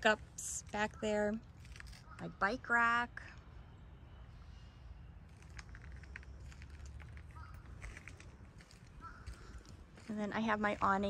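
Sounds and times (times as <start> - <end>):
footsteps on gravel: 5.3 - 11.0.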